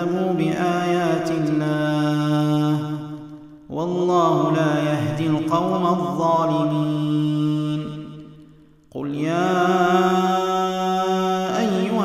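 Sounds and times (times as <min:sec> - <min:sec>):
man reciting: 0:00.0 - 0:12.0.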